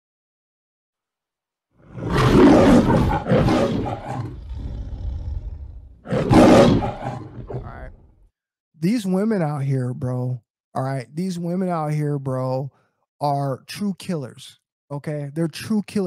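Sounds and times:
lion roaring: 1.8s - 8.1s
lion growling: 1.8s - 8.2s.

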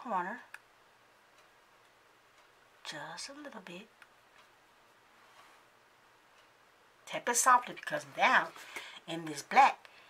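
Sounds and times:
woman's voice: 0.0s - 0.6s, 2.8s - 3.9s, 7.1s - 9.9s
faint tick: 1.4s - 2.6s, 6.4s - 6.6s.

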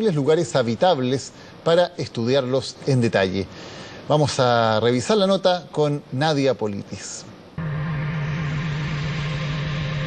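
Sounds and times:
steady low hum: 7.3s - 10.0s.

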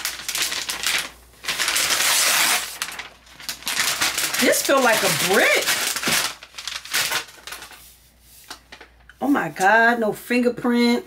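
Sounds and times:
plastic wrap crinkling: 0.0s - 9.6s.

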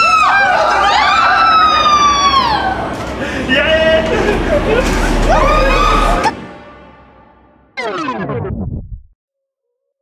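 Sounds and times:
high-pitched scream: 5.3s - 6.3s.

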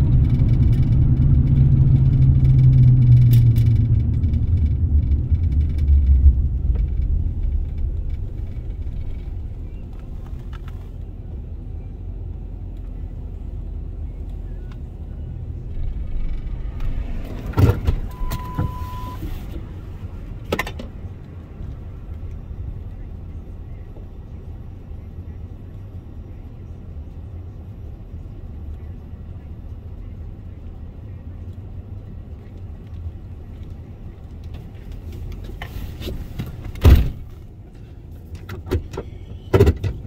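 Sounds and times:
car engine idling: 0.0s - 39.6s
short steady beep: 18.1s - 19.3s.

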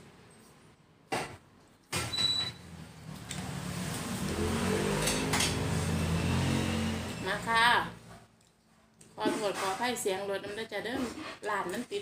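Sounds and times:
vehicle engine passing: 2.6s - 8.3s.

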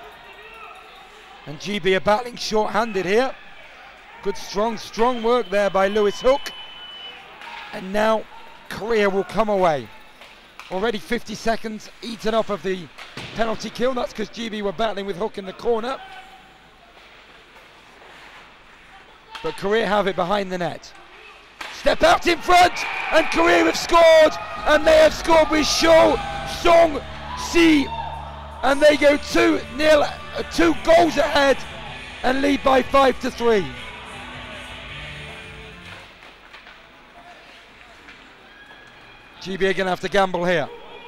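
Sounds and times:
low arena noise: 0.0s - 41.0s.

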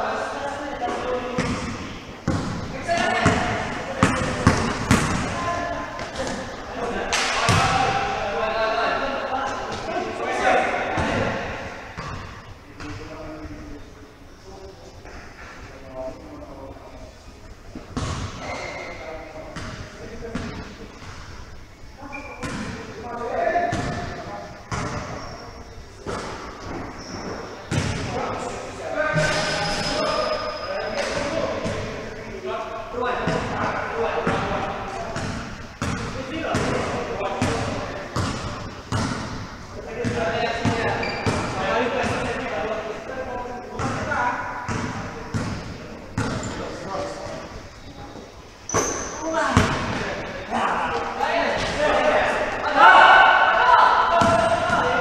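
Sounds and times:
basketball bouncing: 1.4s - 5.4s, 7.5s - 7.8s, 12.0s - 12.4s, 18.0s - 18.4s, 22.4s - 22.8s, 23.7s - 24.1s, 24.7s - 25.2s, 26.0s - 28.1s, 35.2s - 42.3s, 44.7s - 46.6s, 54.2s - 55.0s
players calling out: 39.8s - 55.0s.

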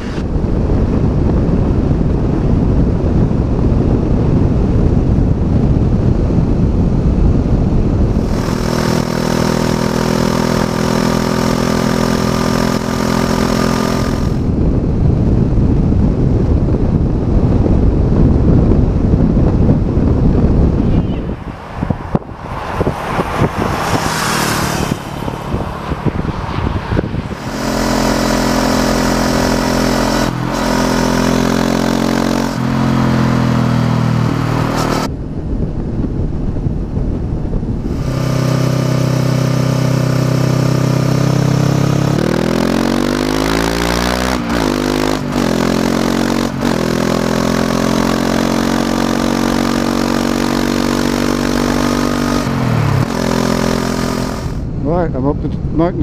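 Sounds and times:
rushing noise: 0.0s - 2.0s, 7.9s - 15.4s, 19.2s - 46.8s, 51.5s - 55.2s
motorcycle engine under way: 0.0s - 21.2s, 22.1s - 54.8s.

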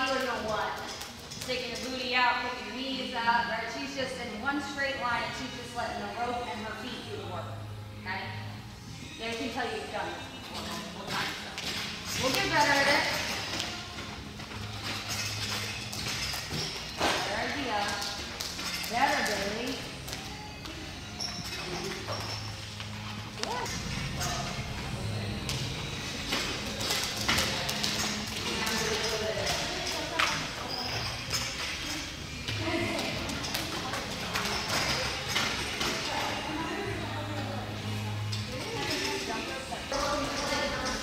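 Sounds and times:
background music: 0.0s - 41.0s.

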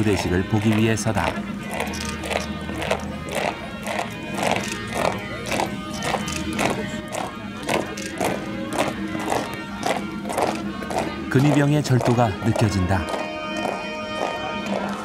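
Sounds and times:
boots marching on paving: 0.0s - 15.0s
music with sustained tones: 0.0s - 15.0s.

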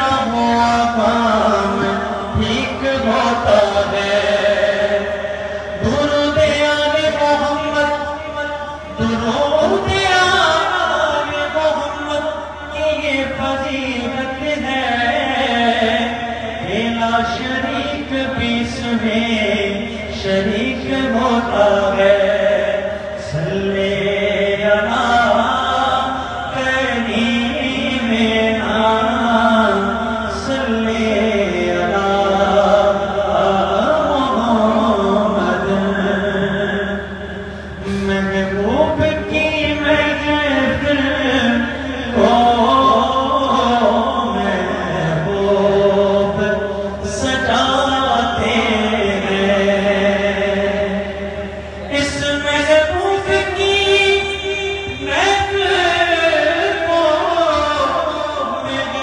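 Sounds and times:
man chanting through microphone: 0.0s - 59.0s
man singing unaccompanied: 0.0s - 59.0s.

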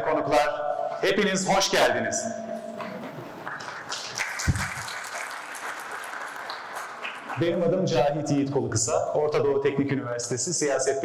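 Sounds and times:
audience applauding: 3.3s - 7.6s.

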